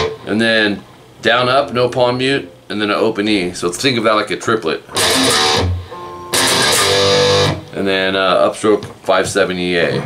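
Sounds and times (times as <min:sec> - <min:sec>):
distorted electric guitar chords: 0:00.0 - 0:00.4, 0:04.9 - 0:07.8.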